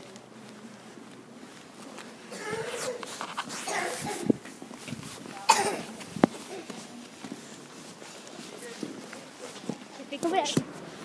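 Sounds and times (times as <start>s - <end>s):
person coughing: 3.6s - 4.3s, 5.4s - 5.9s.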